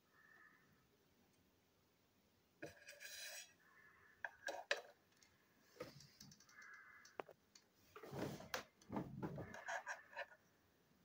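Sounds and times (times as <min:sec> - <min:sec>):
plastic toy parts clicking: 0:05.9 - 0:07.7.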